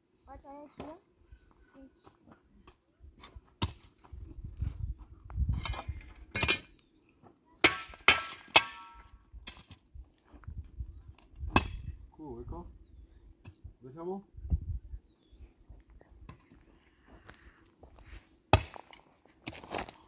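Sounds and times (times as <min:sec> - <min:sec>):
pickaxe striking stone: 0:07.6 - 0:09.1, 0:18.5 - 0:19.6
dirt and gravel scraping: 0:16.4 - 0:20.0.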